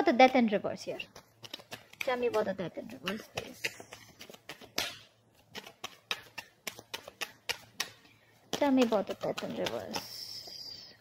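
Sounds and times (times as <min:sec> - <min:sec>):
cards being shuffled: 0:00.2 - 0:10.6.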